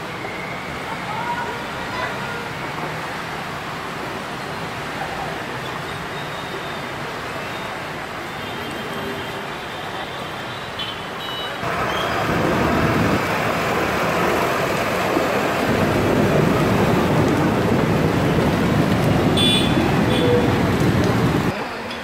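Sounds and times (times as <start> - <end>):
bus churning through water: 0.0 - 21.6
traffic driving through water: 0.0 - 21.6.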